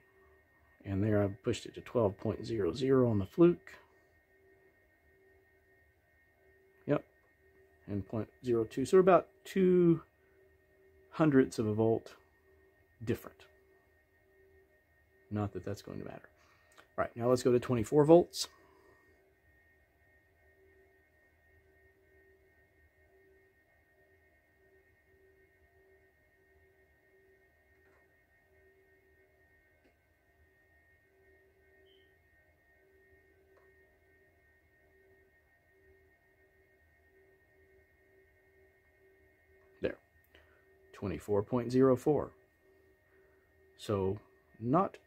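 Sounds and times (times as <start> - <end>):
faint steady tones: 0.0 - 45.0
pulsing tone: 0.0 - 45.0.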